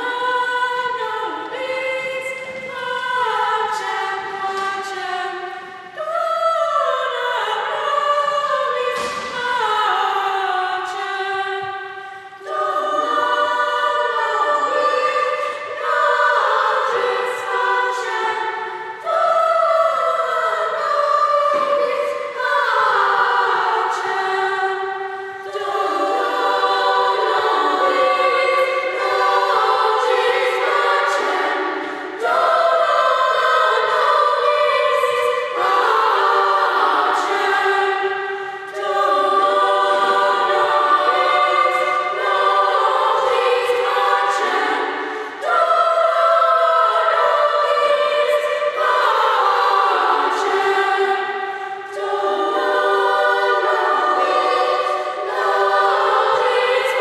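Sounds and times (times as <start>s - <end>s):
children's chorus singing: 0.0s - 57.0s.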